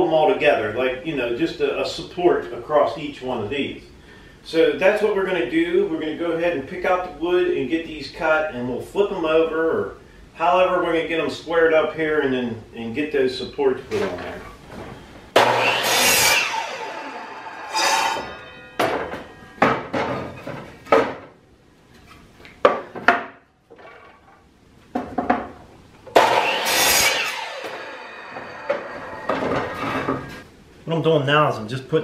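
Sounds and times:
miter saw cutting wood: 15.4s - 19.2s, 26.1s - 30.4s
boards knocking on saw table: 18.8s - 21.3s, 22.6s - 24.0s, 24.9s - 26.4s, 28.7s - 30.4s.

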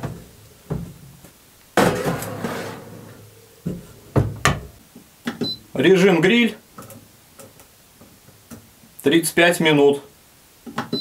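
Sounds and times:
metal tray scraping oven rails: 1.8s - 3.4s.

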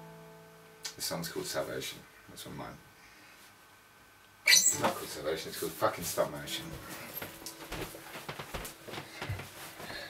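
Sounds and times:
footsteps across a room: 6.5s - 10.0s.

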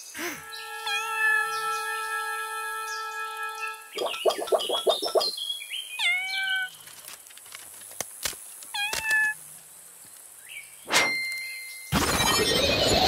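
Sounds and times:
squeaky meow-like cartoon calls: 0.8s - 1.5s, 6.0s - 6.7s.

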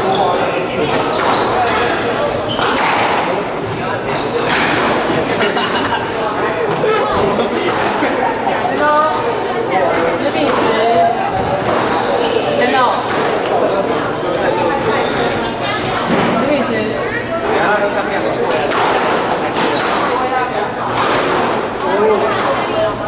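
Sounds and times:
voices chattering in a hall: 0.0s - 23.0s
squash ball impacts: 0.1s - 5.3s, 7.5s - 8.2s, 11.3s - 12.2s, 12.9s - 14.4s, 18.5s - 22.8s.

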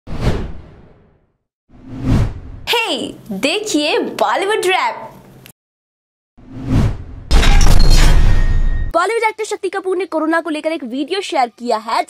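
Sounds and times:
whoosh: 0.1s - 2.7s, 6.4s - 7.3s.

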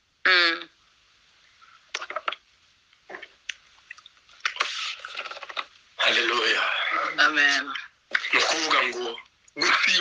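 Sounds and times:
faint hiss: 0.0s - 9.7s.

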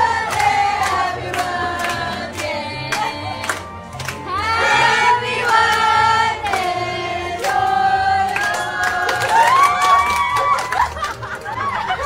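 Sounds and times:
group of people singing: 0.0s - 9.6s.

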